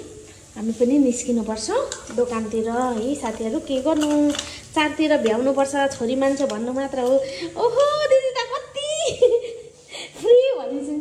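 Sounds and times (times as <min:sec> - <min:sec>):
spices sizzling in a pan: 0:00.0 - 0:08.1
woman talking: 0:00.6 - 0:11.0.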